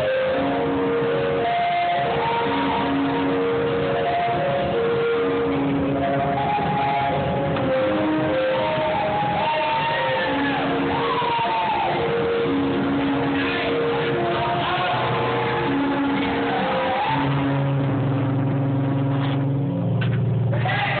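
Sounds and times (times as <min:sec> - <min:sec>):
held keyboard notes: 0:00.0 - 0:20.4.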